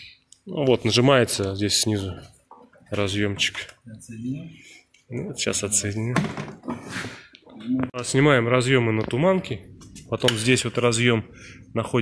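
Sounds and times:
men talking: 0:00.4 - 0:06.5, 0:07.6 - 0:12.0.

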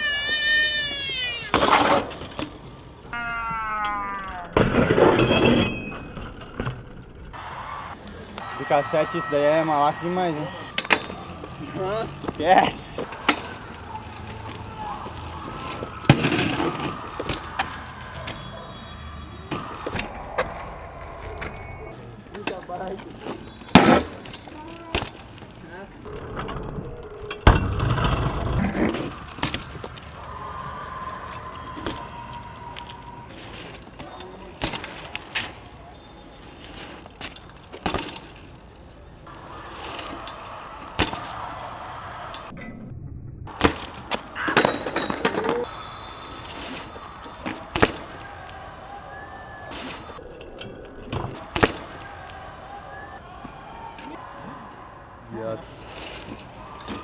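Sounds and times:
bikes riding on concrete: 0:00.0 - 0:42.6, 0:43.4 - 0:57.0.

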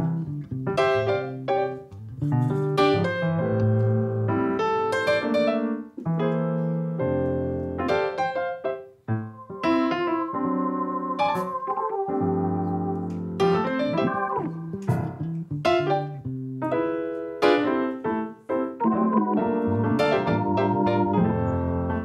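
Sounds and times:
keyboard playing chords: 0:09.1 - 0:15.2, 0:17.4 - 0:22.0.

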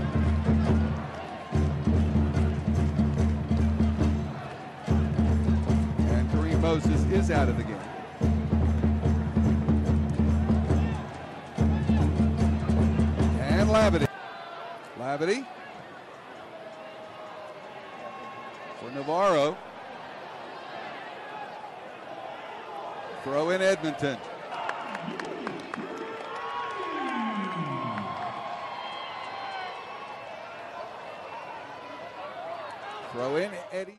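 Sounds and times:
faint held crowd calls: 0:00.0 - 0:33.9
commentator speaking: 0:13.4 - 0:14.1
crowd murmur: 0:24.2 - 0:28.8.

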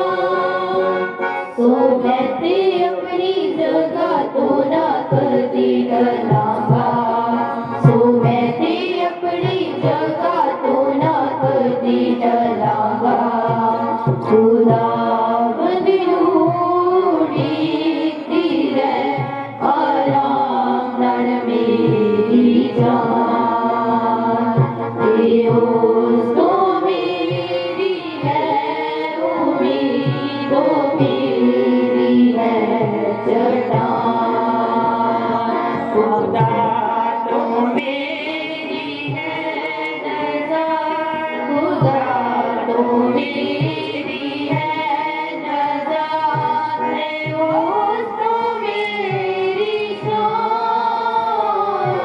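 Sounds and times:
women singing devotional song: 0:00.0 - 0:52.0.

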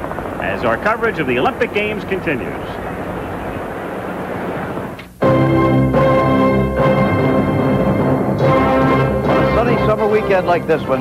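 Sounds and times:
aircraft engine noise: 0:00.0 - 0:05.1, 0:05.9 - 0:11.0.

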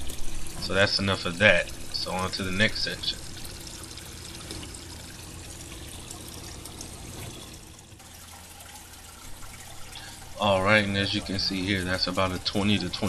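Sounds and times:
water trickling and pouring: 0:00.0 - 0:13.0.

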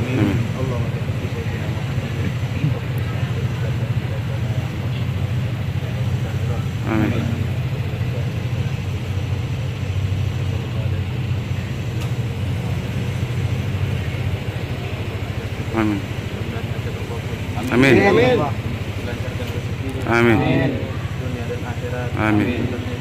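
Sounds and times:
vehicle engine idling: 0:00.0 - 0:23.0
man reciting a prayer: 0:06.4 - 0:08.0, 0:14.8 - 0:23.0.

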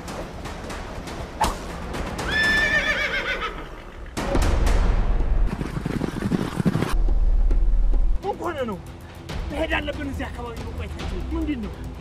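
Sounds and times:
horse whinnying: 0:02.2 - 0:04.0.

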